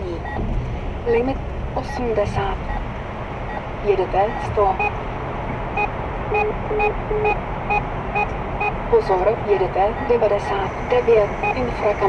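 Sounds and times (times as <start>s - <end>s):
car cabin road noise: 0.0s - 12.0s
short warning beeps: 5.8s - 8.8s, 9.9s - 12.0s.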